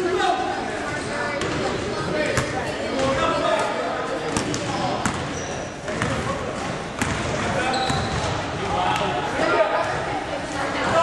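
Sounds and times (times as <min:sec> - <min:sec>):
players' voices: 0:00.0 - 0:11.0.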